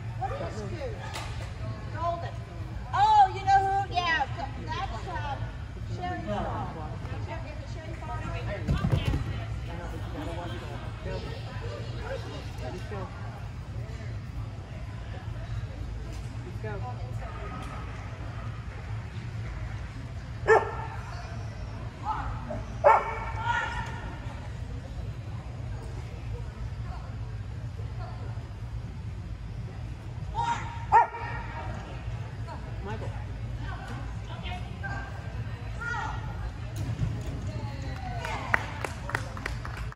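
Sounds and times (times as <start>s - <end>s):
dog barking: 20.5s - 20.9s, 22.8s - 23.3s.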